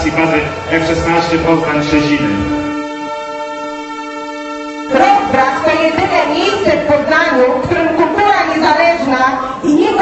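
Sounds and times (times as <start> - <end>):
long steady horn-like tone: 0.0 - 8.1.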